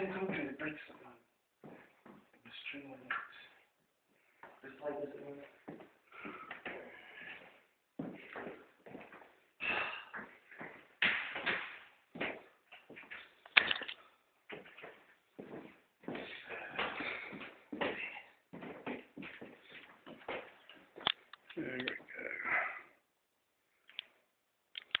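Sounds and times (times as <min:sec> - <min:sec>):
sharp clicks: 0:24.8 - 0:25.0.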